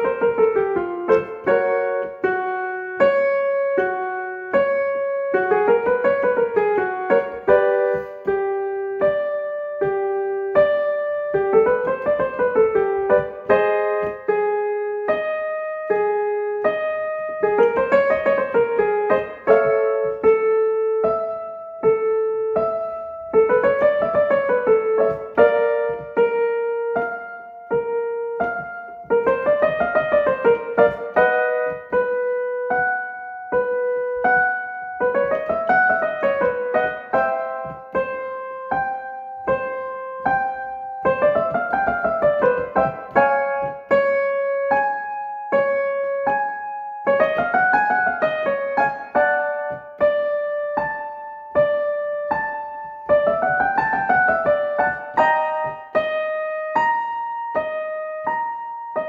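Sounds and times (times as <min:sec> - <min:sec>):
piano warm-up accompaniment: 0:00.0 - 0:59.0.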